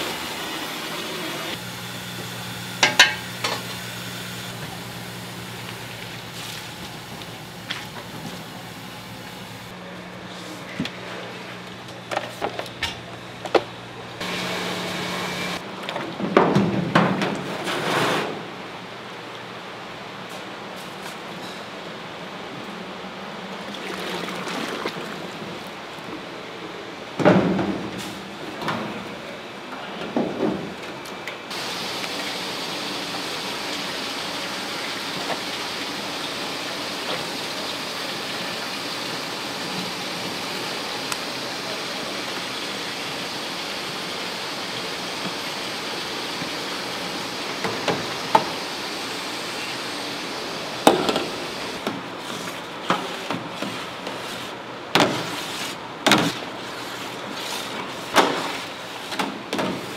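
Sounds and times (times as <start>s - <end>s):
boiling water and steam hiss: 0.0s - 10.8s, 14.2s - 15.6s, 31.5s - 59.9s.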